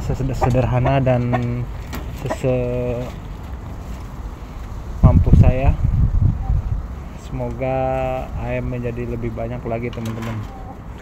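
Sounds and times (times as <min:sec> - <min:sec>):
wind rumble on microphone: 0:04.5 - 0:11.0.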